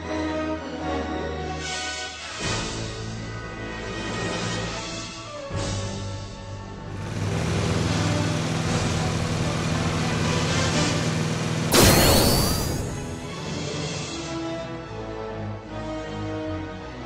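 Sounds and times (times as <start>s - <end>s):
background music: 0.0s - 7.0s, 11.7s - 17.0s
burst with sweeping tones: 11.7s - 13.2s.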